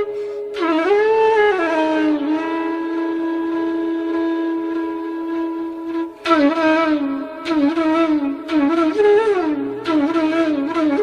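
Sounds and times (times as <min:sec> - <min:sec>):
flute holding long note: 0:00.0 - 0:11.0.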